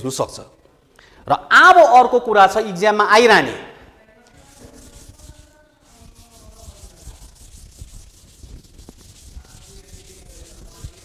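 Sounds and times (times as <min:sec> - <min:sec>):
scratching of writing on a board: 0:04.3 - 0:11.0.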